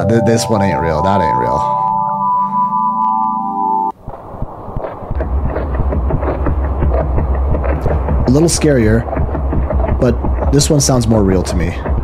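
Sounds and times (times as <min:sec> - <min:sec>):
high electronic tones: 0:00.0 - 0:04.0
dense crackling noise: 0:03.9 - 0:12.0
deep rumble: 0:04.3 - 0:12.0.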